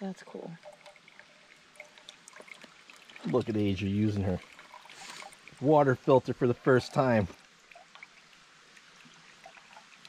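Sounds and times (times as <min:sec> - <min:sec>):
water trickling into metal bottle: 0:00.0 - 0:10.0.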